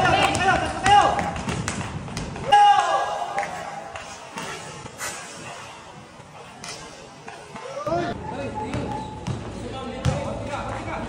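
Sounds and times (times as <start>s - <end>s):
people shouting: 2.4s - 4.5s
basketball thudding on concrete: 8.7s - 10.3s.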